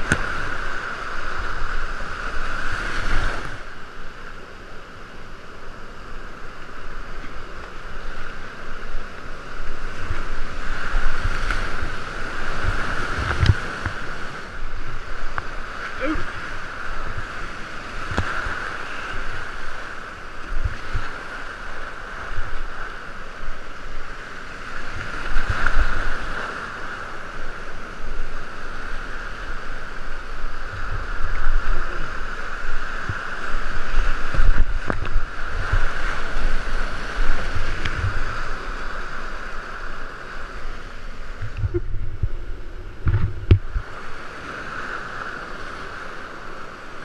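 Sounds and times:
whitewater rapids roaring: 0:00.0 - 0:47.0.

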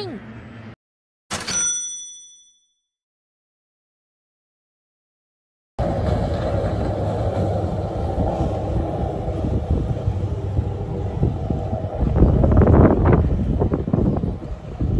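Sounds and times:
wind buffeting microphone: 0:05.8 - 0:14.9.

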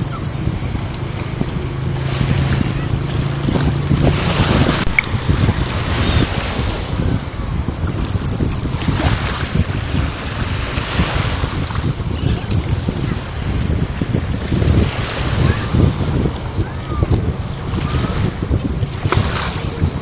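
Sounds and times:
wind buffeting microphone: 0:00.0 - 0:20.0
waves on pebble shore: 0:01.1 - 0:20.0.

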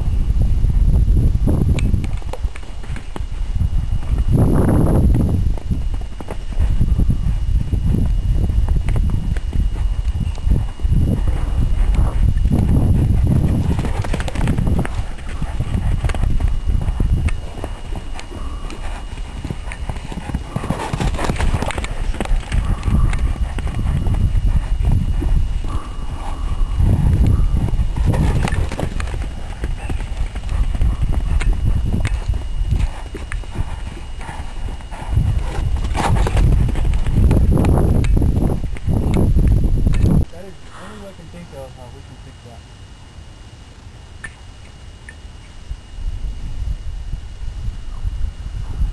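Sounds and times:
low rumble: 0:00.0 - 0:40.7
hoofbeats on sand: 0:01.5 - 0:39.6.

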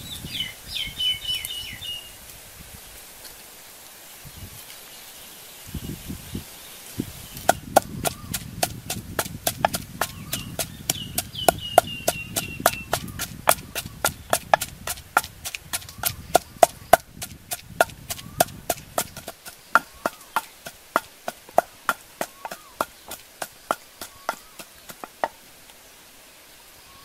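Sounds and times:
wooden pestle pounding in mortar: 0:07.4 - 0:25.4.

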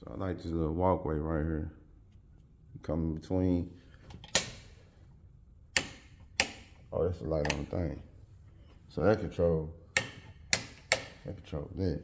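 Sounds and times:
light switch clicks: 0:05.7 - 0:06.8, 0:09.9 - 0:11.2.

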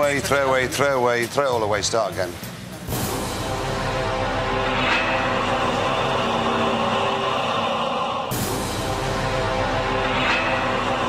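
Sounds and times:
dense noise wash: 0:02.8 - 0:11.0.

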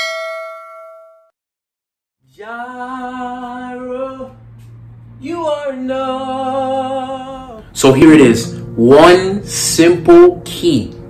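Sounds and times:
notification bell ding: 0:00.0 - 0:01.3.

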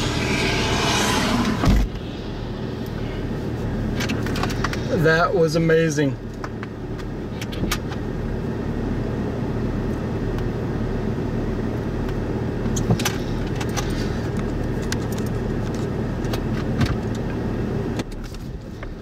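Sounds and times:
wind rumble: 0:00.0 - 0:05.1
vehicle running: 0:00.0 - 0:19.0.

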